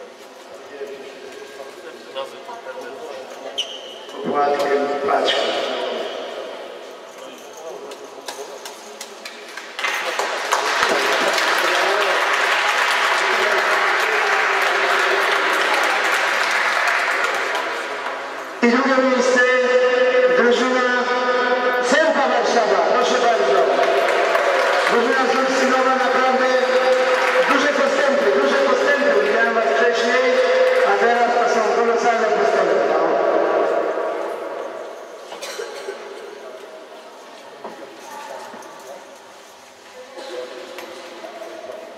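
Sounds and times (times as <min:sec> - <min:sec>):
applause: 0:09.0 - 0:18.4, 0:23.1 - 0:31.0.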